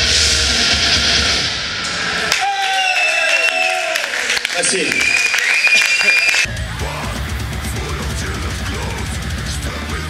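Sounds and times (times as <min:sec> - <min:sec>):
drums and cymbals crashing: 0:00.0 - 0:02.5, 0:06.5 - 0:10.0
audience shouting and cheering: 0:02.0 - 0:10.0.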